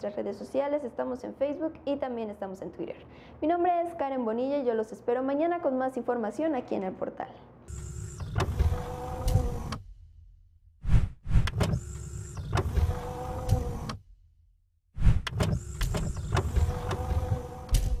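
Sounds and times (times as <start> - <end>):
machine-like whir: 7.7 - 9.8, 10.8 - 14.0, 15.0 - 18.0.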